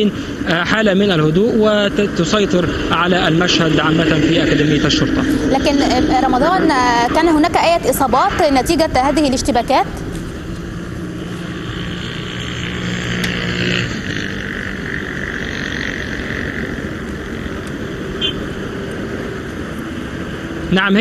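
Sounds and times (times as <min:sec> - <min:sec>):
low hum: 0:00.0 - 0:21.0
outdoor background noise: 0:00.0 - 0:21.0.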